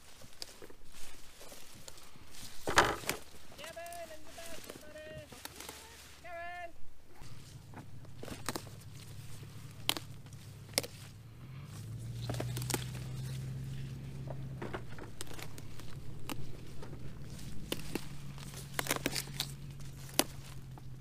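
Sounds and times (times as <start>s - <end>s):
low engine hum: 0.0s - 21.0s
plants rustling: 0.0s - 21.0s
peppers snapping off stems: 9.8s - 11.0s, 12.2s - 13.2s, 17.6s - 20.8s.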